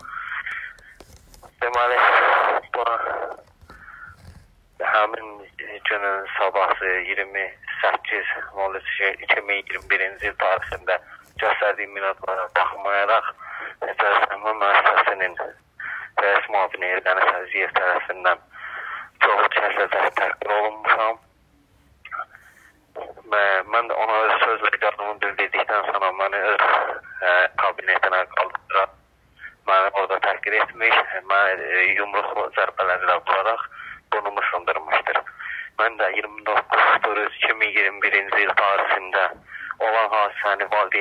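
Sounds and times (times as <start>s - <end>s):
man speaking over a telephone: 0.0s - 21.3s, 22.0s - 41.0s.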